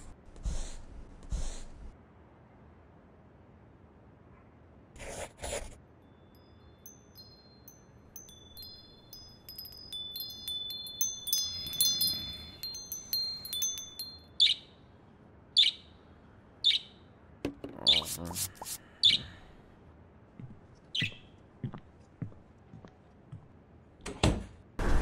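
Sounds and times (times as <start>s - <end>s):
high chime tones ringing: 6.3s - 14.5s.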